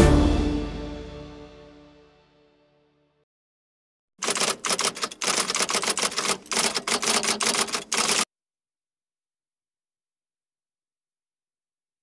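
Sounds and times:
typewriter keystrokes clattering: 4.2s - 8.3s.

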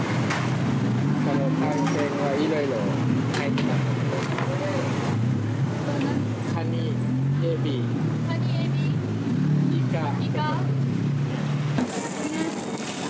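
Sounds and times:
street traffic: 0.0s - 13.0s
vehicle engine humming: 0.0s - 13.0s.

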